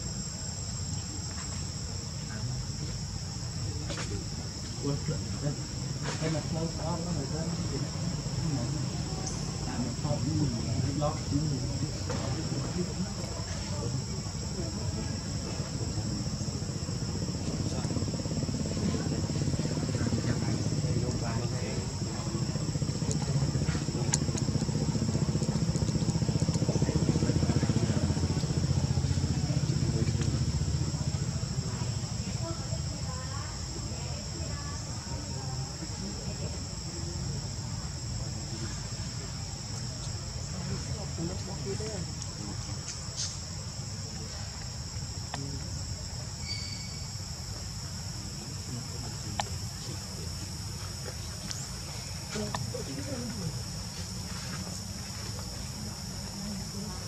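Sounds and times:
low pulsing motor rumble: 0.0s - 42.9s
high insect drone: 0.0s - 57.0s
thin whistle-like tone: 46.4s - 47.1s.

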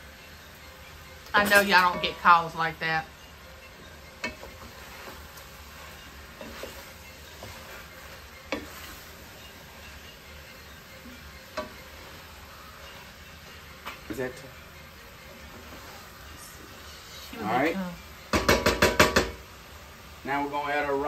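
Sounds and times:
meat sizzling in a pot: 0.0s - 21.0s
wooden spoon stirring: 3.7s - 16.9s
spoon knocking against pot: 18.3s - 19.4s.

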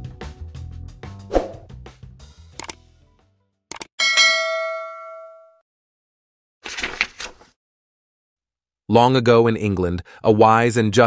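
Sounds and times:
bright bell ding: 4.0s - 5.6s.

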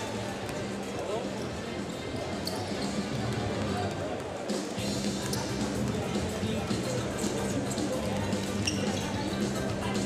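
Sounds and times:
shoe squeaks: 2.3s - 3.1s, 8.5s - 9.3s.

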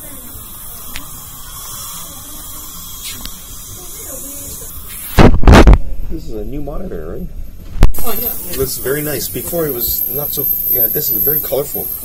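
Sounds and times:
dental equipment hiss and hum: 0.0s - 5.2s, 8.0s - 12.0s
faint voices: 0.0s - 5.2s.

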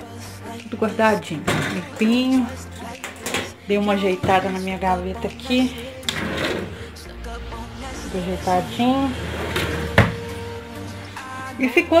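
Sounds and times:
drawer sliding rumble: 1.4s - 2.1s, 5.6s - 10.4s.

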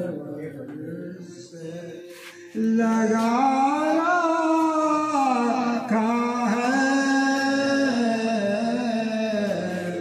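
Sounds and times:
men chanting unaccompanied: 2.5s - 10.0s.

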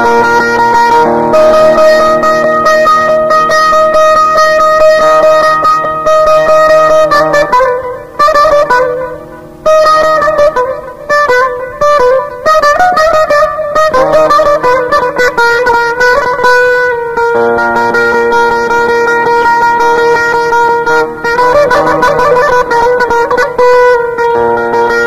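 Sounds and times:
plucked string instrument melody: 0.0s - 25.0s.

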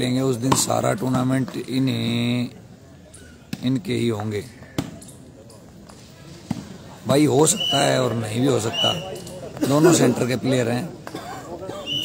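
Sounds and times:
spectators chatting: 0.0s - 12.0s.

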